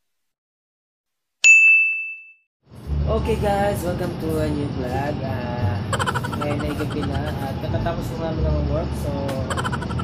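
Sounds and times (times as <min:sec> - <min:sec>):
notification bell ding: 0:01.4 - 0:02.4.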